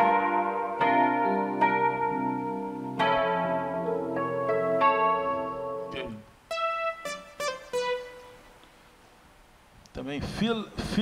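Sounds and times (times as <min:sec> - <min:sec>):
electric piano chords: 0:00.0 - 0:08.5.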